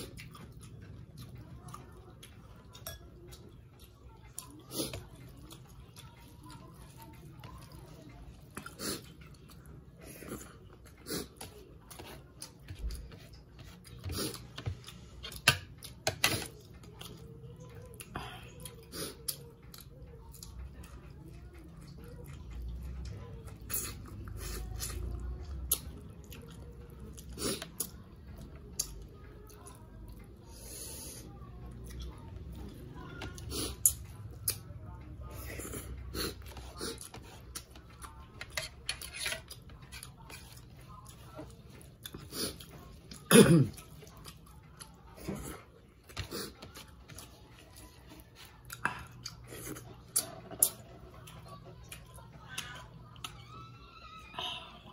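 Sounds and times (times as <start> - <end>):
person chewing: 0.0 - 17.2, 21.8 - 31.2, 35.4 - 53.4.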